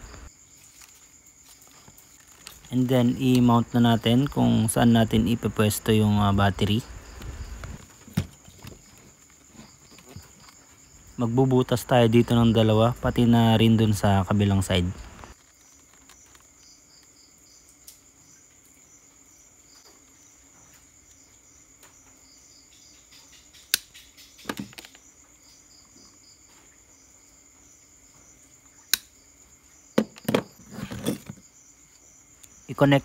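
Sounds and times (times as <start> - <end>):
crickets chirping: 0.0 - 33.0.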